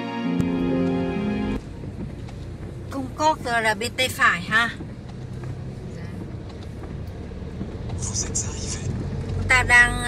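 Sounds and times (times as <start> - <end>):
car engine rumble from inside: 1.0 - 10.0.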